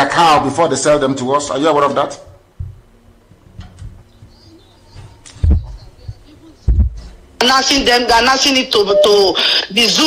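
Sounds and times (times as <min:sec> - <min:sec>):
faint background noise: 0:00.0 - 0:10.0
dull low thumps: 0:02.3 - 0:04.4, 0:05.0 - 0:07.3.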